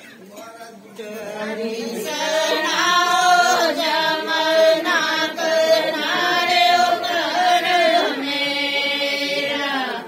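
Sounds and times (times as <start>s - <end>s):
women singing devotional song: 0.3s - 10.0s.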